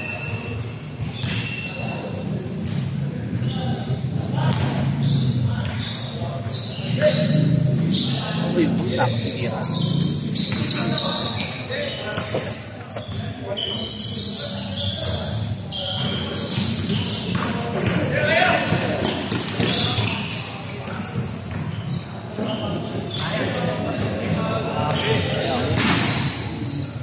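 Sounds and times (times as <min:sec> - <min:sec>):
players' voices: 0:01.7 - 0:27.0
basketball bouncing on court: 0:10.3 - 0:13.2, 0:16.0 - 0:22.0.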